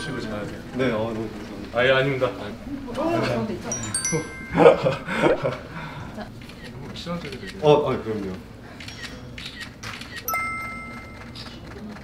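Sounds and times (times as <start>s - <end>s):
bright bell-like chime: 3.7s - 5.4s, 10.3s - 11.6s.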